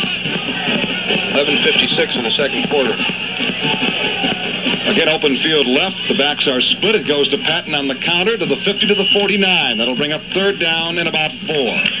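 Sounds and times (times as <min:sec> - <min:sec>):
crowd noise: 0:00.0 - 0:12.0
music: 0:00.0 - 0:12.0
radio sports broadcast: 0:00.0 - 0:12.0.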